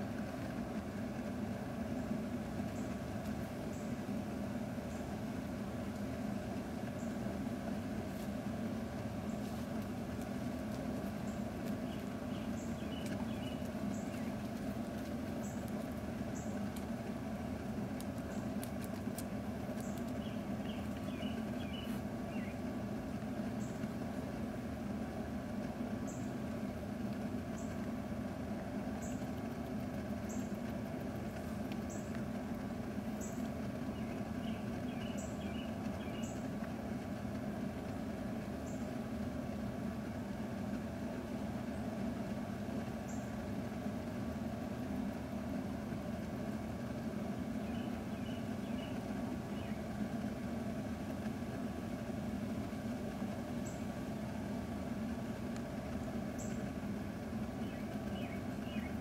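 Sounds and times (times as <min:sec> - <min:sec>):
low mechanical hum: 0:00.0 - 0:59.0.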